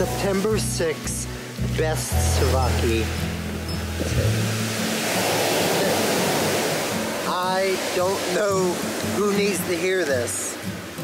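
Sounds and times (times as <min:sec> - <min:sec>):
surf washing over pebbles: 0:03.9 - 0:11.0.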